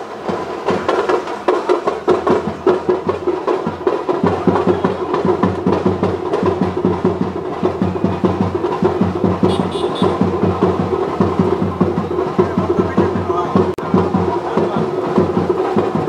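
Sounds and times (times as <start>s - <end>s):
drums in fast rhythm: 0.0s - 16.0s.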